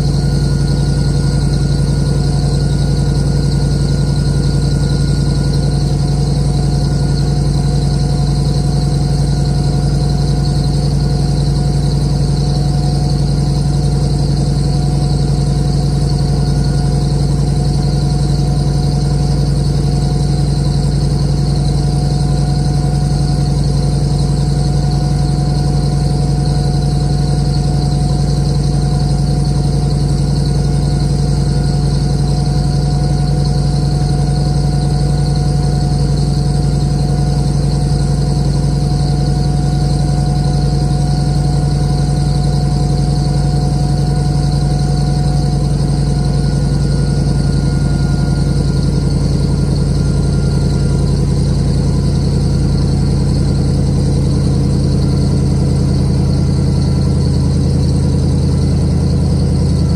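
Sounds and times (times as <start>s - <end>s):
engine running steadily: 0.0s - 59.9s
steady high whine: 0.0s - 59.9s.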